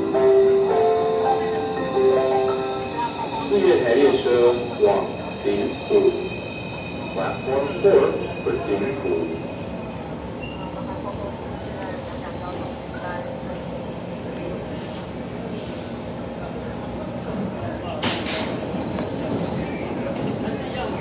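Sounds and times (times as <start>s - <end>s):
station chatter: 0.0s - 21.0s
train rumbling at platform: 0.0s - 21.0s.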